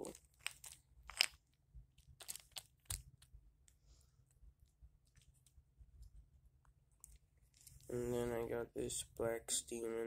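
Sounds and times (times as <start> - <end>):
light clicks and rustles handling: 4.6 - 7.9.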